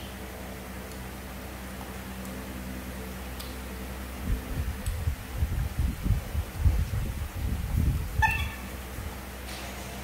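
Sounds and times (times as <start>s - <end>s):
monkey squeak: 8.2s - 8.7s.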